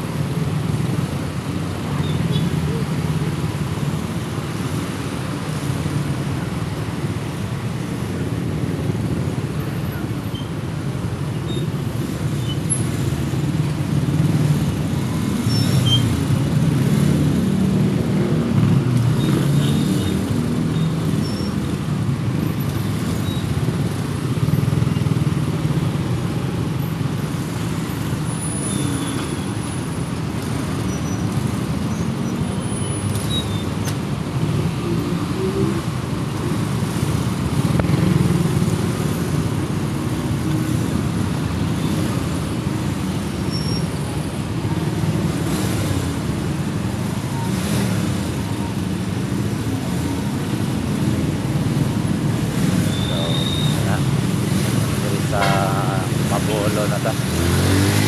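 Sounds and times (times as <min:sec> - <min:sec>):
cars idling and creeping: 0:00.0 - 0:58.0.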